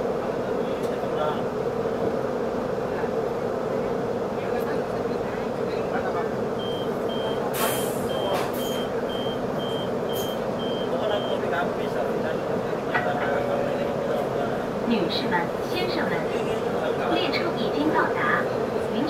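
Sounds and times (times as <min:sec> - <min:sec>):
train carriage hum: 0:00.0 - 0:19.0
short high warning beeps: 0:06.6 - 0:11.4.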